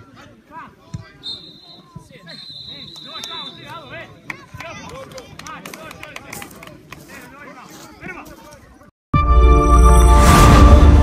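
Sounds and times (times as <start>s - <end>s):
players calling out: 0.0s - 6.3s.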